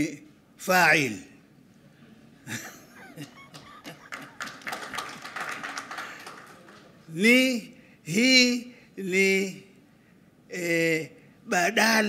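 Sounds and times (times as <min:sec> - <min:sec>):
audience hand claps: 0:03.4 - 0:07.0.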